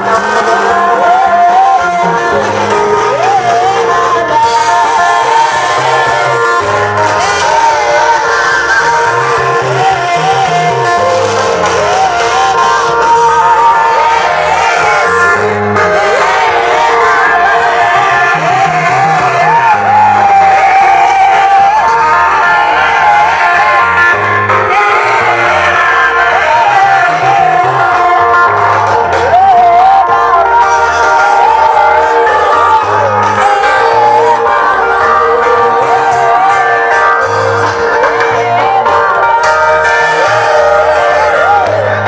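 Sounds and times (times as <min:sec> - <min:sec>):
amplified band with bass line: 0:00.0 - 0:42.0
congregation singing a gospel song: 0:00.0 - 0:42.0.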